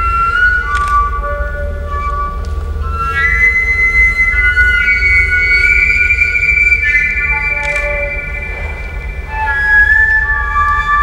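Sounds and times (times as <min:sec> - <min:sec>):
long wooden flute: 0:00.0 - 0:11.0
steady low hum: 0:00.0 - 0:11.0.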